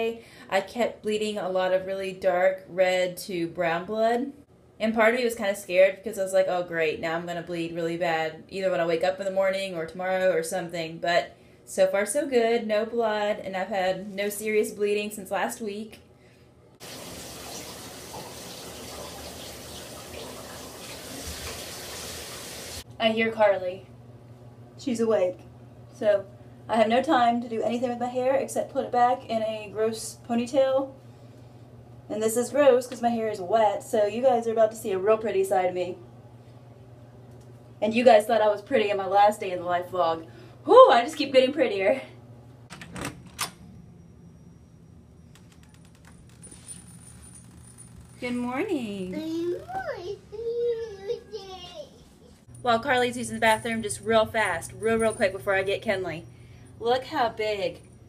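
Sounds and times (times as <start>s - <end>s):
shower water spray hissing: 16.8s - 22.8s.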